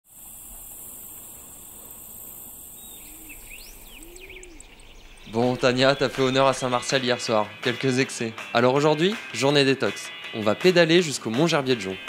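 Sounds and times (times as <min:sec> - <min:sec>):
crickets chirping: 0:00.0 - 0:06.9
low bird call: 0:01.2 - 0:06.8
bird whistled calls: 0:02.8 - 0:06.8.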